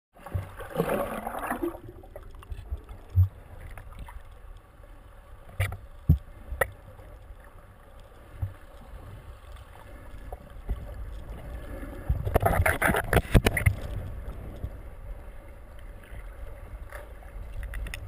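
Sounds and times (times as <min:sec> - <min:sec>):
underwater moving water rumble: 0:00.2 - 0:18.0.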